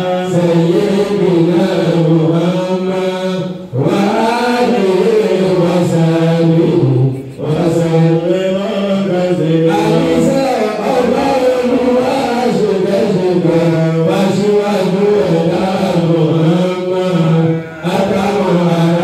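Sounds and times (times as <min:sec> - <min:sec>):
man chanting through a microphone: 0:00.0 - 0:19.0.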